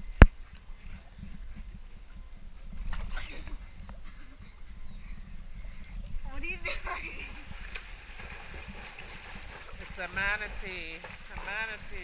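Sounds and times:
water lapping at pool edge: 5.7s - 12.0s.

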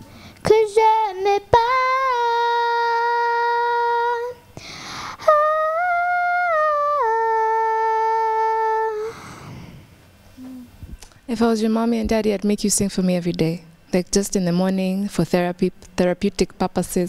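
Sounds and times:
girl singing a cappella: 0.0s - 9.4s.

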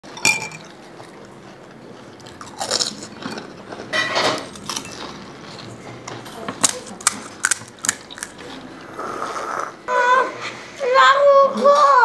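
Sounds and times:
crunching crisp shells: 2.2s - 5.8s, 6.5s - 8.6s.

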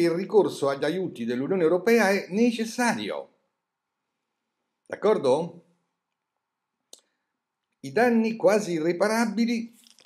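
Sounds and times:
man speaking: 0.0s - 3.4s, 4.9s - 5.8s, 7.8s - 9.8s.

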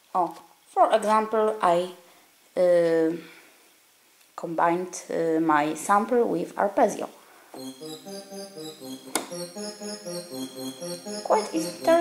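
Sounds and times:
keyboard arpeggio of short notes: 7.6s - 12.0s.

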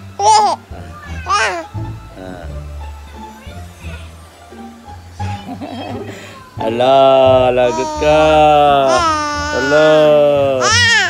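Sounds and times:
child squealing: 7.6s - 10.0s, 10.6s - 11.0s.

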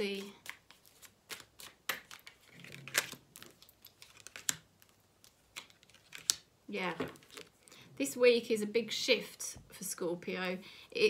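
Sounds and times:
cards being shuffled: 0.0s - 7.6s.

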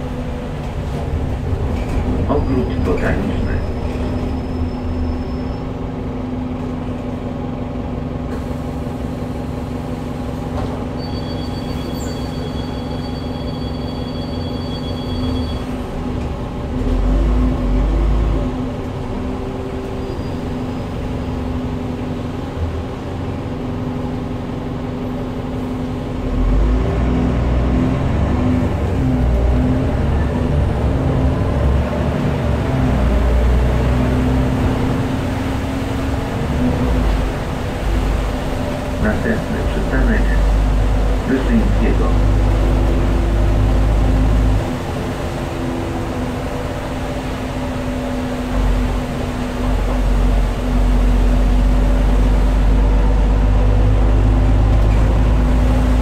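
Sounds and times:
bus engine humming: 0.0s - 56.0s.

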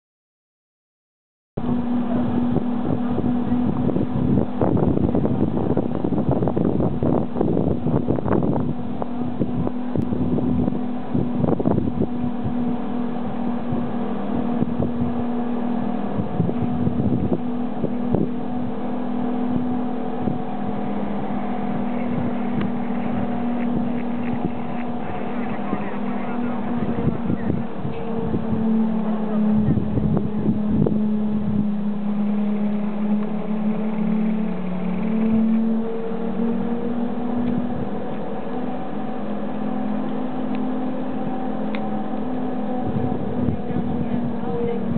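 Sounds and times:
steady mechanical hum: 1.6s - 44.9s
wind buffeting microphone: 1.6s - 44.9s.

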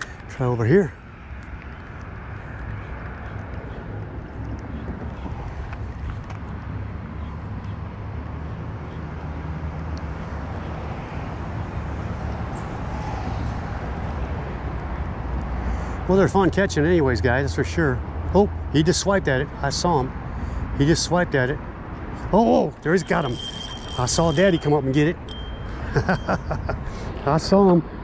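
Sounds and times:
rumble of passing cars: 0.0s - 28.0s
vehicle engine hum: 0.0s - 28.0s.

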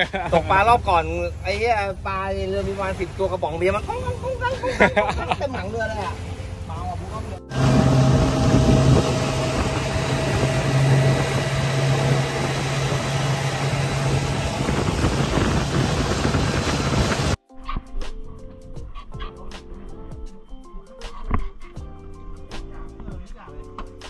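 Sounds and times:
boat engine running: 6.1s - 17.4s
background music: 17.4s - 24.0s.

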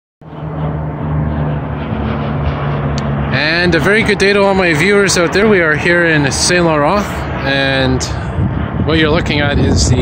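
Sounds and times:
propeller plane drone overhead: 0.2s - 10.0s.

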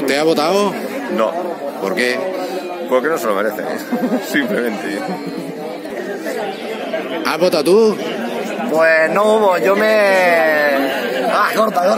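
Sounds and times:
people talking at once: 0.0s - 11.9s.

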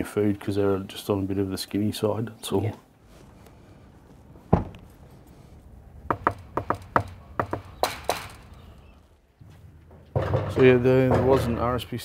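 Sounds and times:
vehicle door slamming: 4.5s - 4.9s.

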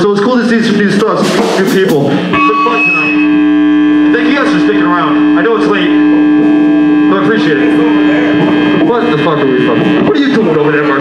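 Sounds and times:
voices talking: 0.8s - 11.0s
amplifier electrical hum: 2.2s - 11.0s.

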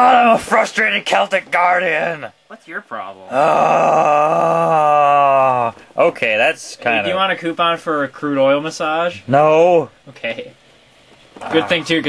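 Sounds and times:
man groaning: 3.3s - 5.8s.

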